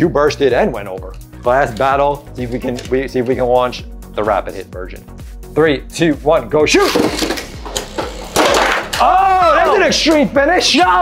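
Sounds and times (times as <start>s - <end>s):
spinning tops whirring: 6.8s - 9.1s.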